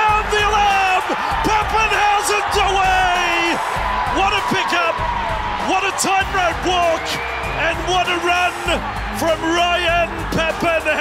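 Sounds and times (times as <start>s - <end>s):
excited commentator calling: 0.0s - 5.0s, 5.6s - 11.0s
backing music: 0.0s - 11.0s.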